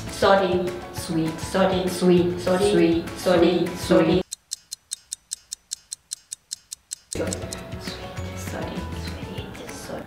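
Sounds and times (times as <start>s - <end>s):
fast clock ticking: 4.2s - 7.7s.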